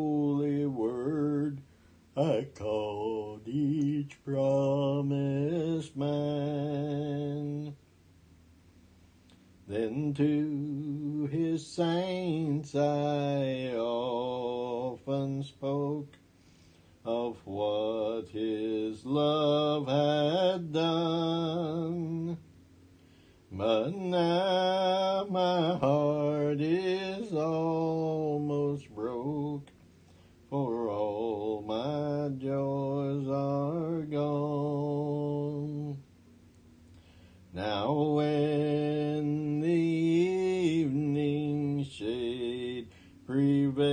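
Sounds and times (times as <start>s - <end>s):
man singing a hymn: 0.0s - 7.8s, 9.6s - 16.2s, 17.0s - 22.5s, 23.5s - 29.8s, 30.5s - 36.1s, 37.5s - 43.9s.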